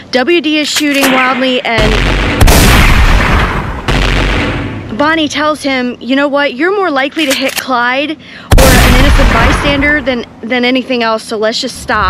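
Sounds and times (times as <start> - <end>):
gunshots with echoing tail: 0.9 - 5.0, 8.5 - 10.2.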